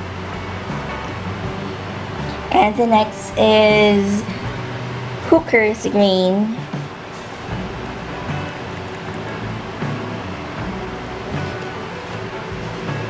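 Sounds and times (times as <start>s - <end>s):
soft background music: 0.0s - 13.0s.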